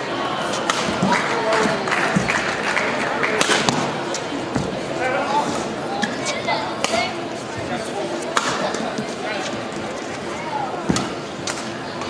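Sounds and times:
racket striking shuttlecock: 3.4s - 3.9s.

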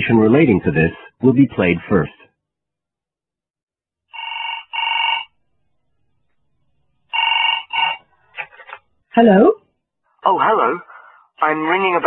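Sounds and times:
telephone ringing: 4.1s - 5.4s, 7.1s - 8.1s.

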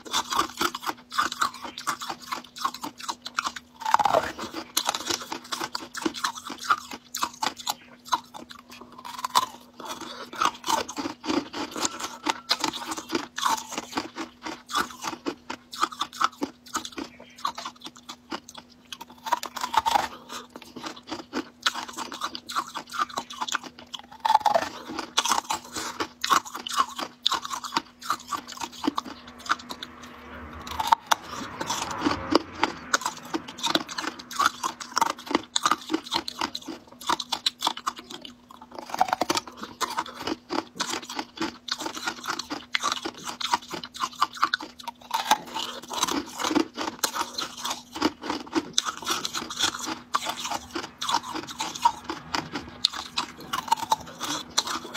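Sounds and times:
crunching and chewing ice: 0.0s - 54.9s.

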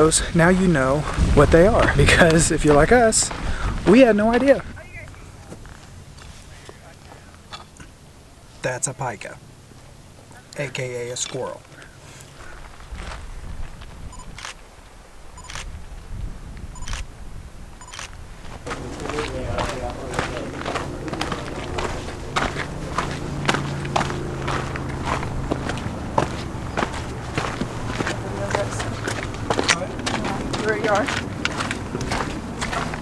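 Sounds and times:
footsteps on rocky dirt trail: 0.0s - 7.7s, 9.7s - 14.2s, 17.9s - 33.0s.

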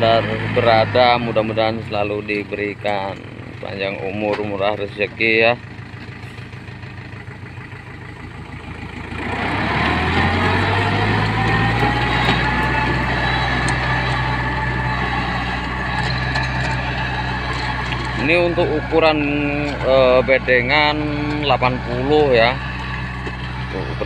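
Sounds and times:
tractor diesel engine running: 0.0s - 24.0s
rotary tiller churning soil: 8.2s - 24.0s.

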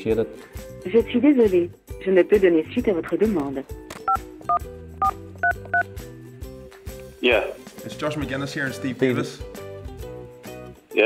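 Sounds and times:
quiet background music: 0.0s - 11.0s
telephone keypad beeps: 4.1s - 5.9s.

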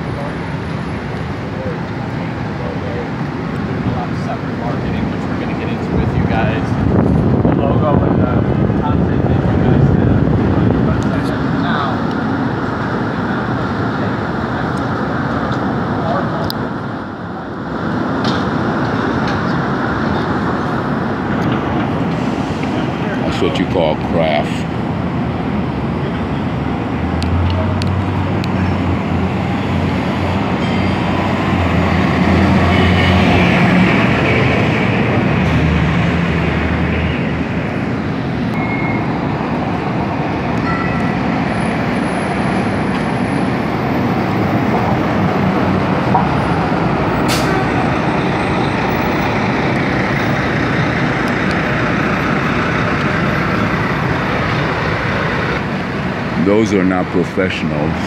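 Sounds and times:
city traffic noise: 0.0s - 58.0s
heavy vehicle engine droning: 0.0s - 58.0s.

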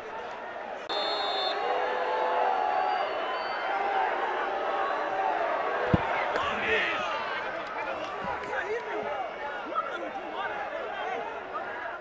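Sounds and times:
stadium crowd noise: 0.0s - 12.0s
referee's whistle: 0.9s - 1.6s
ball being kicked: 5.9s - 6.5s.

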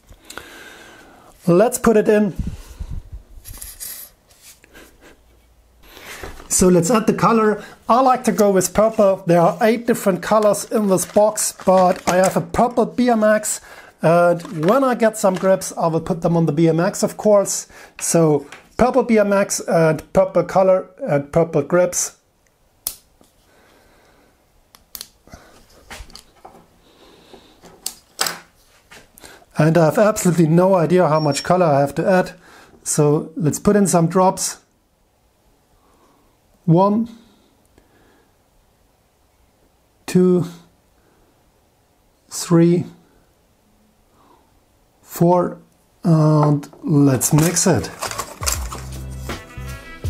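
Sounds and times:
plastic squeeze bottle handling: 8.2s - 13.6s, 14.3s - 15.7s, 46.7s - 49.1s.

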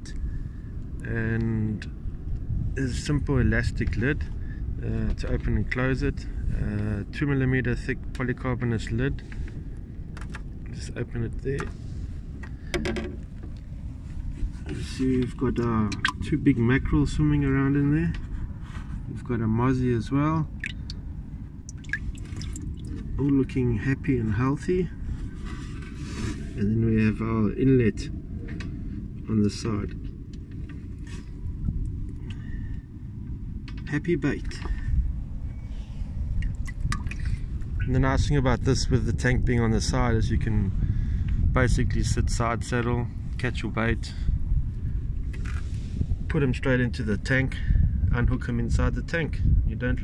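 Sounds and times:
wind rumble on microphone: 0.0s - 50.0s
short knocks: 12.7s - 13.5s
water drips and splashes: 20.5s - 21.0s, 21.6s - 23.2s, 36.4s - 37.6s.

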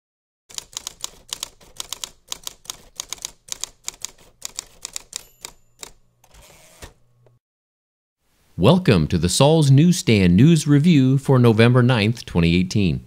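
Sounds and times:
typewriter keys clacking: 0.5s - 6.0s
typewriter bell ring: 4.5s - 6.1s.

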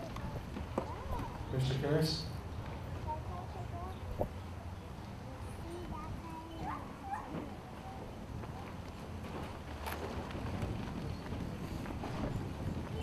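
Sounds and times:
faint distant voices: 0.0s - 9.7s.

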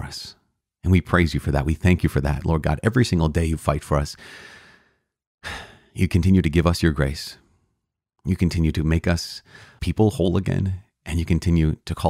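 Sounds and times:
man speaking: 0.0s - 4.2s, 5.5s - 7.4s, 8.3s - 12.0s
man breathing: 4.2s - 6.0s, 9.4s - 9.8s.

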